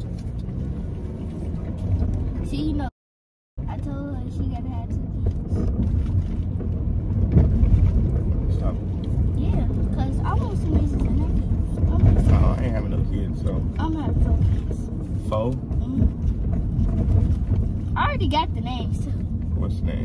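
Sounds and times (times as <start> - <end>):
car engine and tyres rumbling: 0.0 - 2.9, 3.6 - 20.0.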